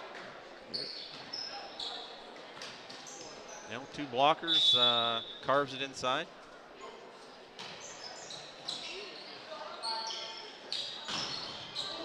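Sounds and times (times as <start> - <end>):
sneaker squeaks on court floor: 0.7 - 3.8, 7.6 - 12.0.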